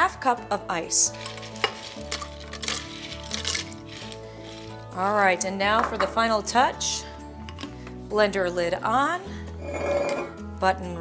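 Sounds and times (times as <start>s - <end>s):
background music: 0.0s - 11.0s
ice cubes clinking into blender jar: 1.2s - 4.2s.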